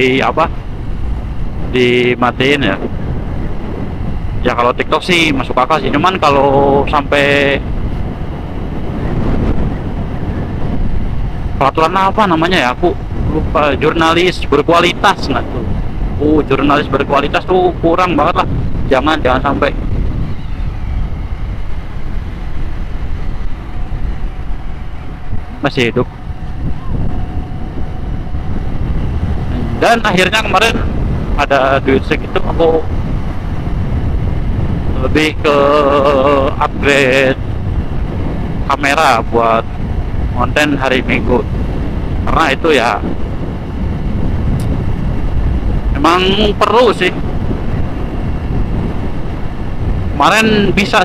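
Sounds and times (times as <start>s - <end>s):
motorcycle engine cruising: 0.0s - 51.0s
wind rumble on microphone: 0.0s - 51.0s.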